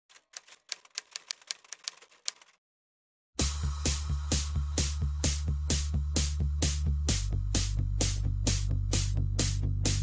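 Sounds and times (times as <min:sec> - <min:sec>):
typewriter keys clacking: 0:00.1 - 0:02.6.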